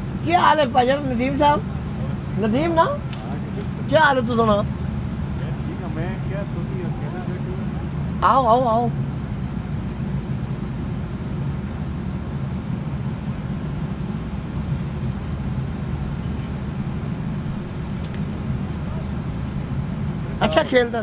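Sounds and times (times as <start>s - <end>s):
low outdoor background rumble: 0.0s - 21.0s.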